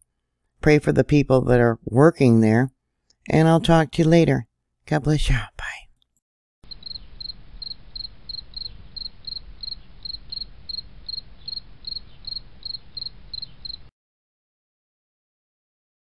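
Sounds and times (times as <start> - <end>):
cricket chirping: 6.6 - 13.9.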